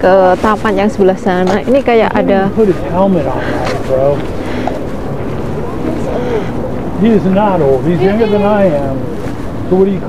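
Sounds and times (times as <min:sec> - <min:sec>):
faint voices talking: 0:00.0 - 0:10.0
wind buffeting microphone: 0:00.0 - 0:10.0.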